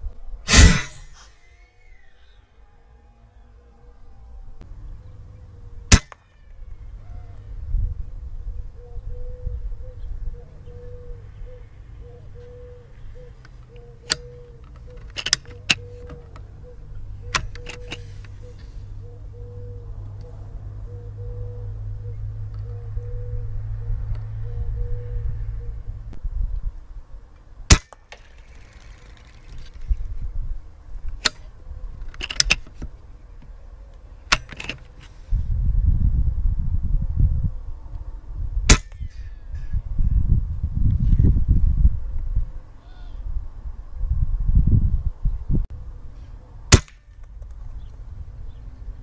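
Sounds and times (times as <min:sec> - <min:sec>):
air rifle shots: 0:00.5 - 0:01.5, 0:05.9 - 0:06.2, 0:27.7 - 0:29.4, 0:38.7 - 0:39.1, 0:46.7 - 0:47.2.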